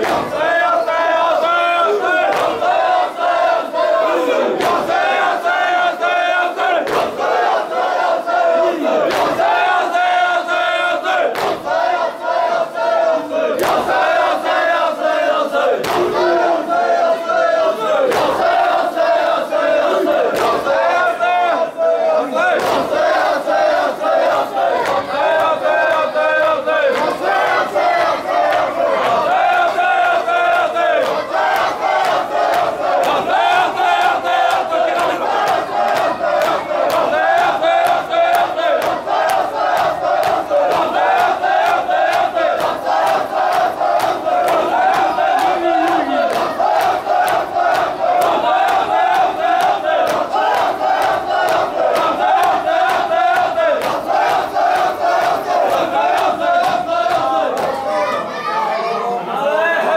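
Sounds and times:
hands slapping chests: 0.0s - 0.4s, 2.2s - 2.7s, 4.6s - 5.1s, 9.1s - 9.6s, 11.3s - 11.8s, 13.6s - 14.1s, 15.8s - 16.2s, 18.1s - 18.6s, 20.2s - 20.7s, 22.6s - 57.8s
men chanting in unison: 0.0s - 58.3s.

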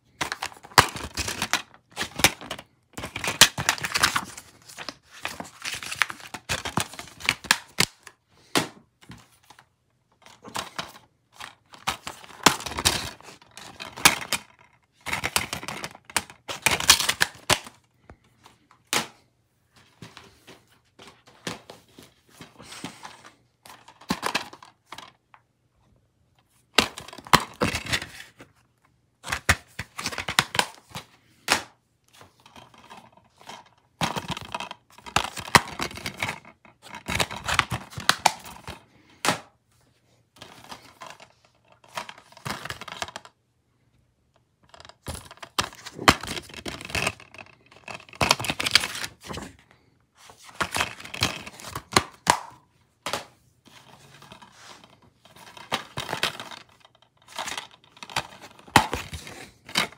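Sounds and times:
plastic cases clacking: 0.1s - 18.2s, 44.7s - 49.6s, 50.4s - 59.9s
paper rustling: 48.4s - 51.8s.

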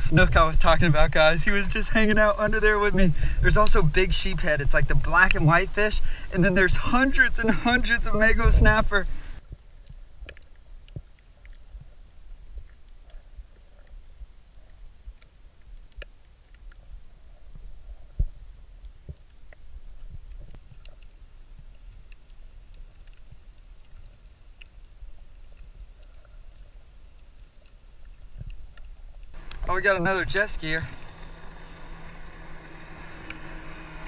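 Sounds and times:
faint underwater clicks and ticks: 0.0s - 34.0s
low underwater rumble: 0.0s - 34.0s.

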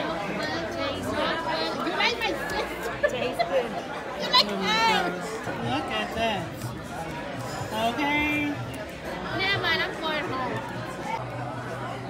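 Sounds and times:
hubbub of chatter: 0.0s - 12.0s.

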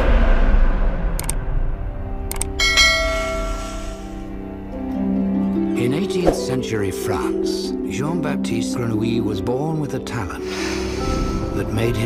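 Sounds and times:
sharp click: 1.2s - 1.4s, 2.3s - 2.6s
bright bell ding: 2.6s - 4.3s
faint low music: 4.2s - 12.0s.

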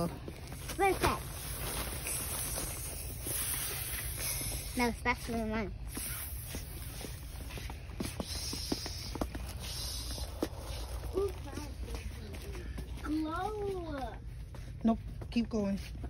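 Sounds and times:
light footsteps: 0.0s - 16.0s
low steady hum: 0.0s - 16.0s
child speaking indistinctly: 0.6s - 1.4s, 4.5s - 6.0s, 10.8s - 14.4s.

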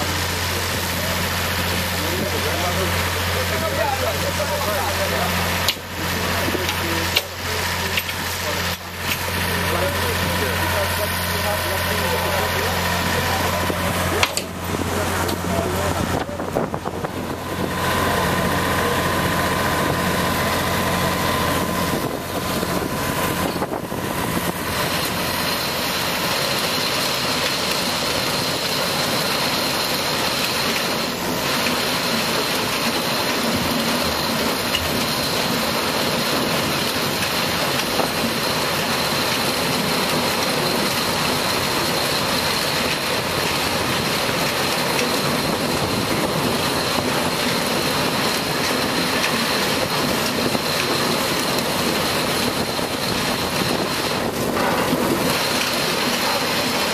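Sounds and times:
harvester machinery running: 0.0s - 56.9s.

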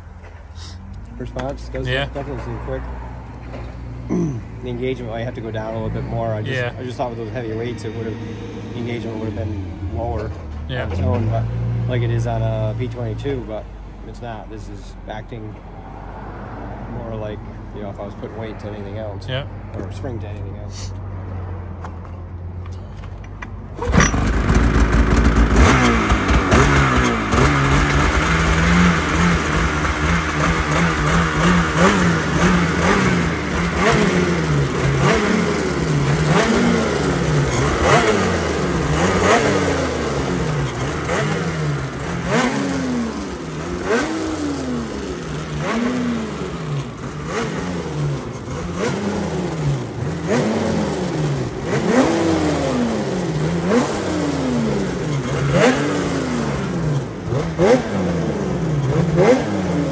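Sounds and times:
snowmobile engine revving: 0.6s - 2.7s, 4.2s - 13.4s, 23.8s - 59.9s.

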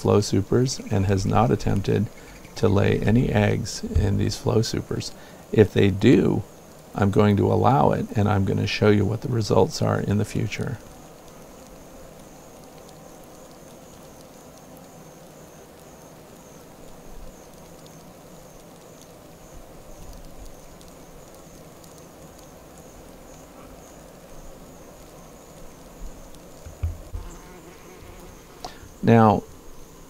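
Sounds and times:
honey bees buzzing: 0.0s - 30.0s
low bumps: 26.6s - 27.4s.

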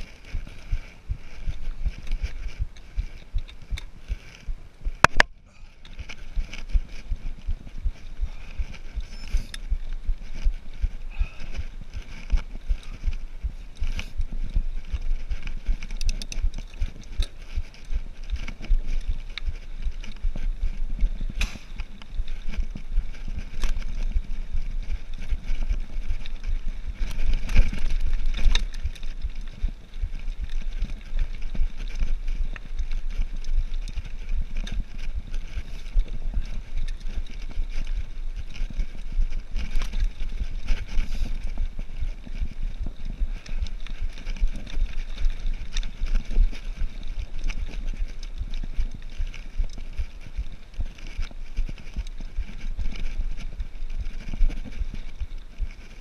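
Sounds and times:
bike chain and frame rattling: 0.0s - 56.0s.

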